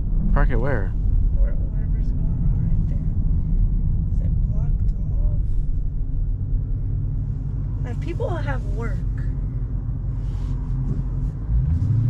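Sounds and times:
car engine deep rumble: 0:00.0 - 0:12.0.

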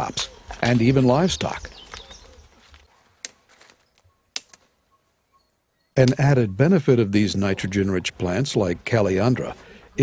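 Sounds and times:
twigs snapping: 0:01.7 - 0:04.7.

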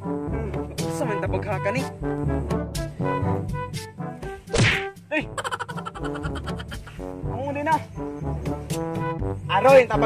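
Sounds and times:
bouncy background music: 0:00.0 - 0:10.0
whack sound effect: 0:04.5 - 0:04.8.

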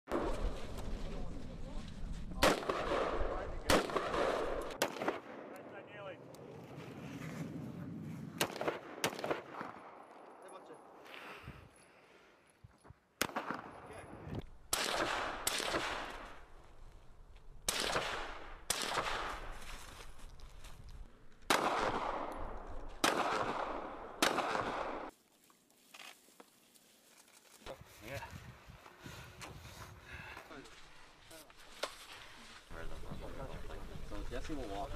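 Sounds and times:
gunshots with long echo: 0:02.4 - 0:05.9, 0:08.4 - 0:11.0, 0:13.2 - 0:14.1, 0:14.7 - 0:16.5, 0:17.6 - 0:19.6, 0:21.5 - 0:25.1.

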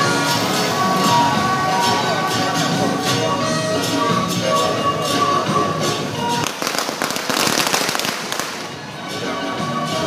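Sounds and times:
music: 0:00.0 - 0:10.0
firecrackers popping: 0:06.4 - 0:09.0.

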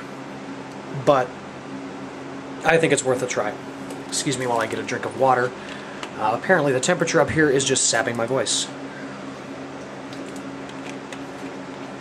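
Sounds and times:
box fan humming: 0:00.0 - 0:12.0.

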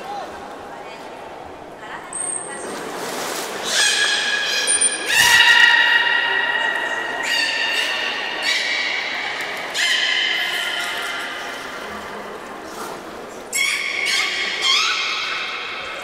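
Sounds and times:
whale calls: 0:03.6 - 0:11.8, 0:13.5 - 0:16.0.

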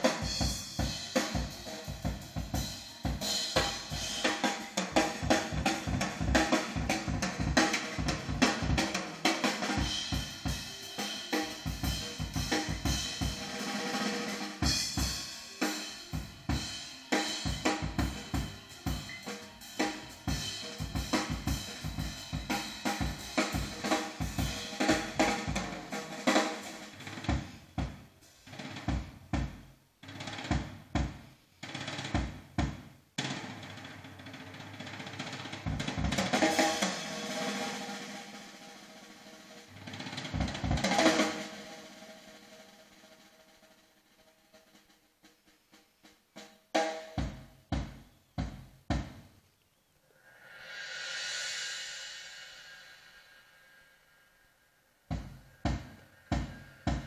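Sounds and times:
snare drum strokes: 0:00.0 - 0:43.3
jazz recording over loudspeakers: 0:00.0 - 0:46.4
held sustained tone: 0:50.0 - 0:57.0
cymbal strokes: 0:50.1 - 0:57.0.

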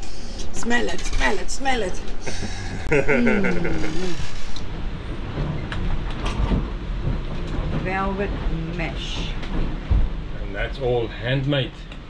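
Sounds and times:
boat cabin rumble and rushing: 0:00.0 - 0:11.8.

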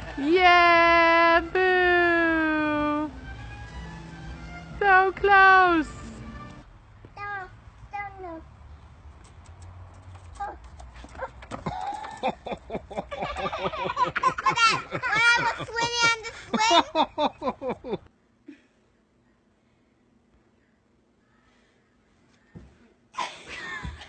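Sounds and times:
child laughing: 0:11.2 - 0:18.0.

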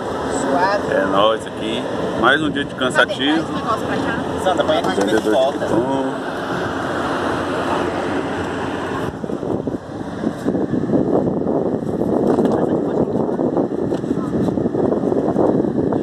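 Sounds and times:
wind on microphone: 0:05.2 - 0:16.0.

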